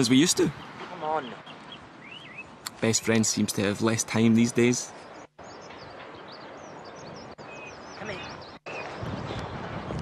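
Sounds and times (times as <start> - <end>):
small birds chirping: 0.0 - 10.0
steady outdoor hiss: 0.0 - 10.0.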